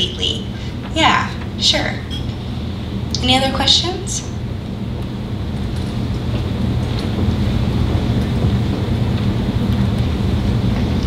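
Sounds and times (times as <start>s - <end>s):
hum: 0.0s - 11.0s
steady low rumble: 0.0s - 11.0s.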